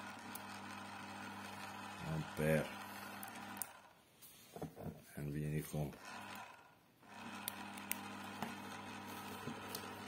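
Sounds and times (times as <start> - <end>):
electric motor humming: 0.0 - 4.0, 5.8 - 10.0.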